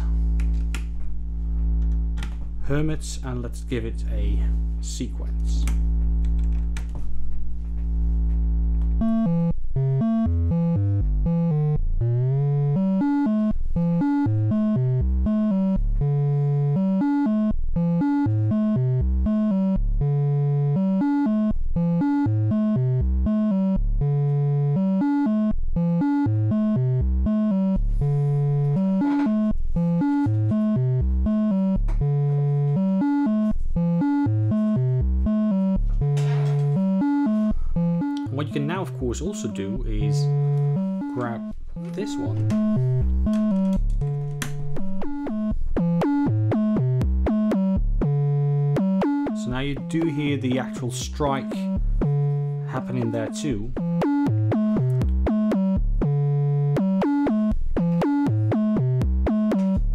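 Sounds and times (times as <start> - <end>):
patch cable clicks: 5.5 - 7.0
sequenced deep synth notes: 7.7 - 59.9.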